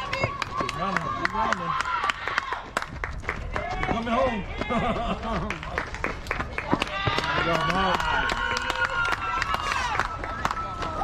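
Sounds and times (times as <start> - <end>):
people clapping: 0.0 - 11.0.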